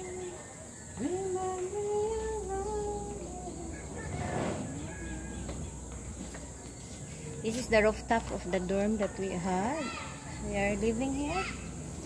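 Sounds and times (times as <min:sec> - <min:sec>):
person humming a slow tune: 0:01.0 - 0:04.0.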